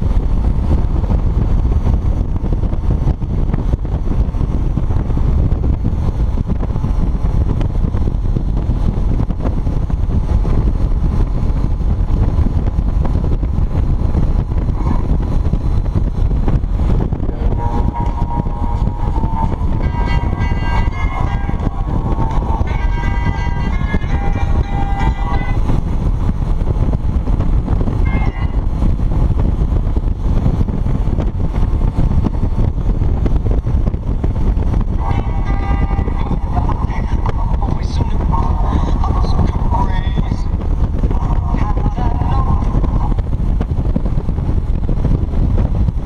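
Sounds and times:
motorcycle engine and road noise: 0.0s - 46.0s
wind buffeting microphone: 0.0s - 46.0s
held pitched tones: 17.1s - 26.0s, 28.0s - 28.7s, 34.8s - 43.2s.

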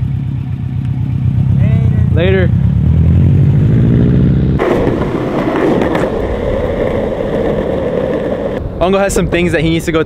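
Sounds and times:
car engine pulling away: 0.0s - 8.6s
skateboard wheels on asphalt: 4.6s - 10.0s.

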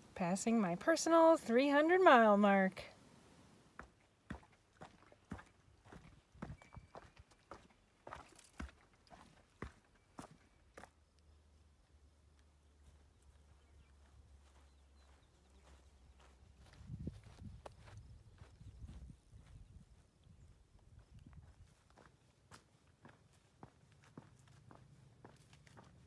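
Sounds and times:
footsteps on rocky trail: 3.7s - 11.0s, 12.9s - 26.0s.

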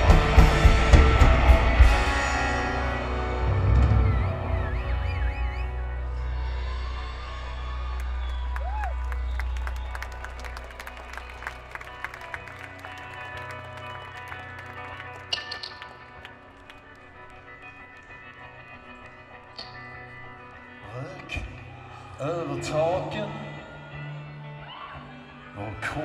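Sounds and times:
audience whistling: 3.6s - 6.1s, 7.9s - 15.7s
audience applauding: 7.6s - 18.9s.

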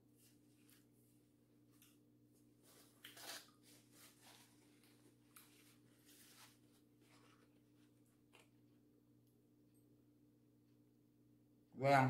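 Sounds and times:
soft chewing: 0.2s - 8.8s
fork and napkin rustle: 2.6s - 8.5s.

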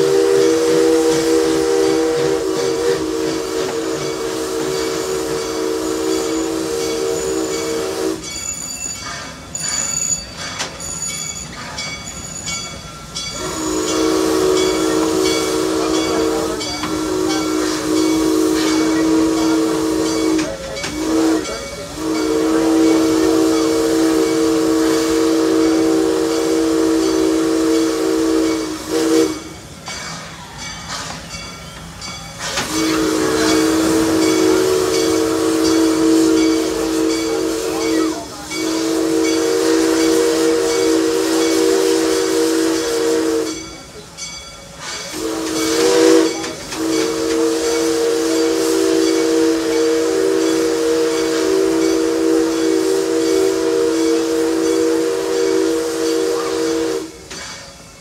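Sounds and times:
chime steam whistle blasts: 0.0s - 58.0s
steam hissing: 0.0s - 58.0s.

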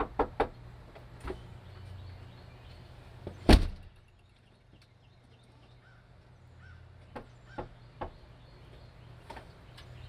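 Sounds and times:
knocking on wooden door: 0.0s - 0.5s.

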